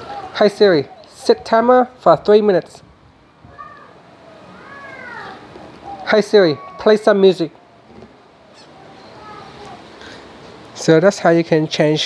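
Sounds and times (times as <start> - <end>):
faint meow-like call: 3.5 - 6.0.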